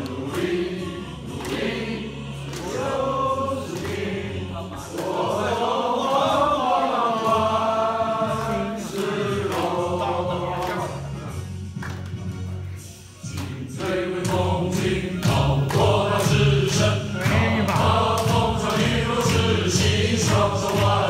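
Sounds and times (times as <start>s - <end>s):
men singing in unison: 0.0s - 10.9s, 13.2s - 21.0s.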